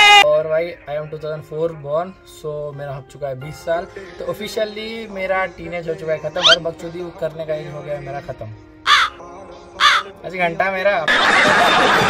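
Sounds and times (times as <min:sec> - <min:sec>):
quiet background music: 0:00.2 - 0:12.0
crow cawing: 0:06.4 - 0:06.6, 0:08.9 - 0:09.2, 0:09.8 - 0:10.1.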